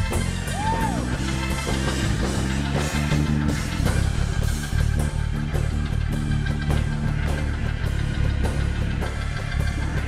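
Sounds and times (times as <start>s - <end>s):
drum kit beat: 0.0s - 10.0s
live soul-jazz band: 0.0s - 10.0s.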